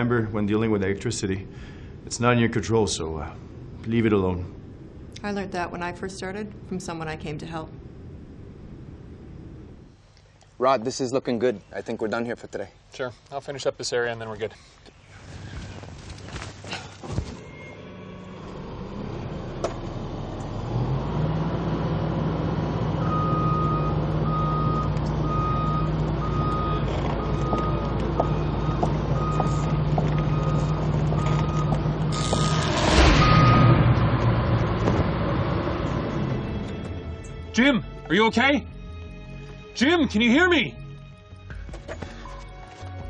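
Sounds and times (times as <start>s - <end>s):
excavator diesel engine running: 17.9s - 37.2s
travel alarm beeping: 23.0s - 33.9s
loud electrical burst: 32.1s - 34.8s.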